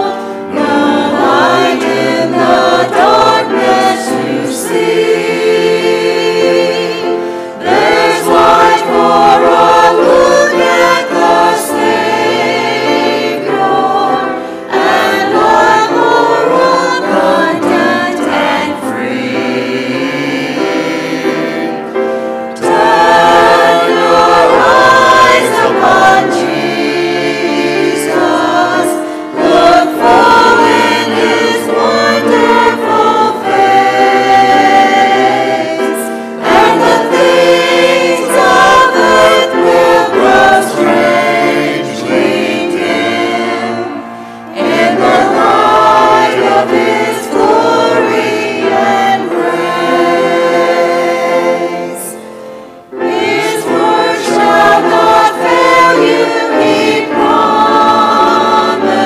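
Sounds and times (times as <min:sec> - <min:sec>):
grand piano accompaniment: 0:00.0 - 0:59.0
mixed choir singing a hymn: 0:00.0 - 0:59.0.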